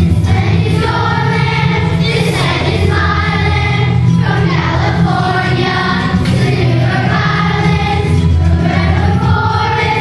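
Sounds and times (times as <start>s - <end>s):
children's choir singing: 0.0s - 10.0s
instrumental accompaniment: 0.0s - 10.0s.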